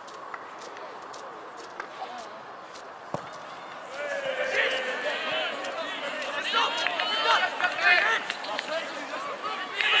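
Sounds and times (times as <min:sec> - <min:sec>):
distant shouts of voices: 0:03.8 - 0:10.0.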